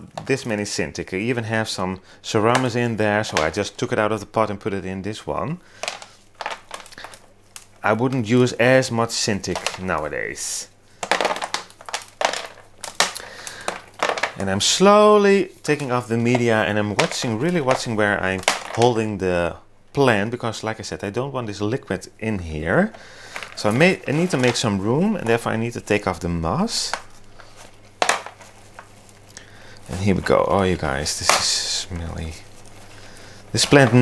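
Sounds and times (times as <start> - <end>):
gritty potting mix crumbling: 0.0 - 34.0
faint crackles and ticks: 5.7 - 19.1, 22.6 - 34.0.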